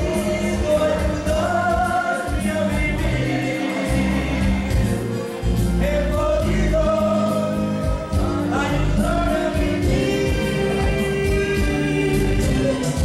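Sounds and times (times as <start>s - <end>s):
man singing karaoke: 0.0s - 13.0s
recorded backing track: 0.0s - 13.0s.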